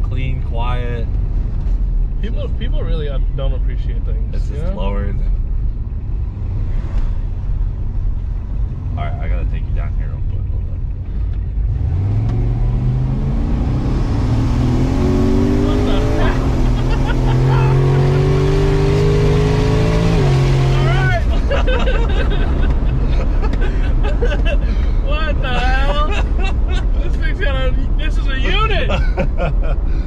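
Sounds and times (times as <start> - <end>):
car engine accelerating: 0.0 - 29.9
people laughing and shouting: 15.6 - 18.1, 20.7 - 24.6.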